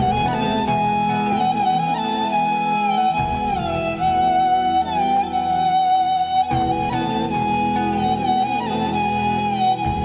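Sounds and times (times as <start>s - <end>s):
slow instrumental music: 0.0s - 10.0s.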